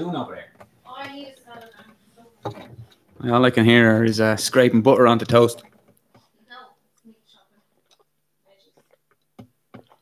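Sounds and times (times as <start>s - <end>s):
kitchen noises: 0.0s - 10.0s.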